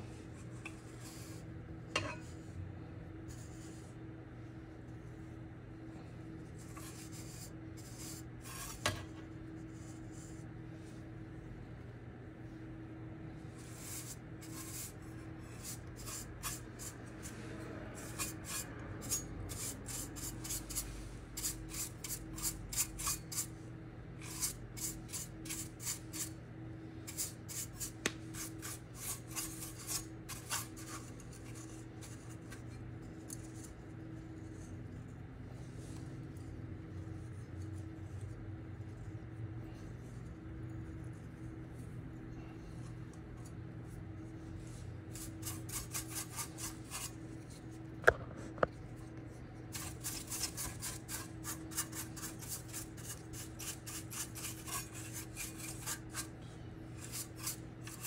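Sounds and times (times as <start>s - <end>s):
steady low hum: 0.0s - 58.0s
scratchy rubbing on metal housing: 45.1s - 48.2s.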